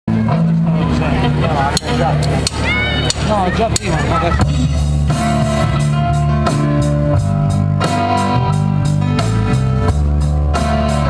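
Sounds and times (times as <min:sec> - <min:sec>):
amplified live band: 0:00.1 - 0:11.0.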